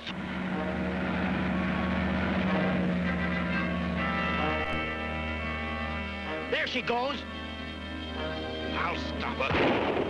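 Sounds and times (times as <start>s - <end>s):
car engines running fast: 0.0s - 10.0s.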